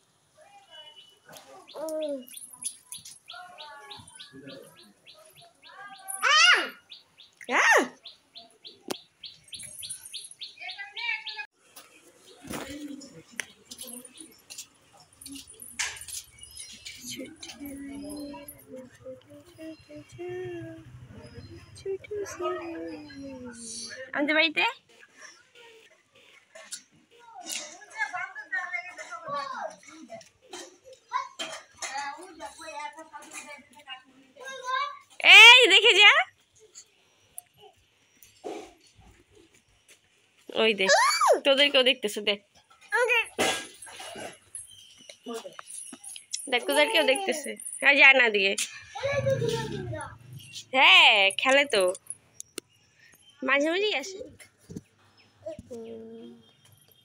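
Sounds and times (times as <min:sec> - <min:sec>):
small bird chirping: 0:00.6 - 0:11.5, 0:12.2 - 0:24.1, 0:48.3 - 0:57.0.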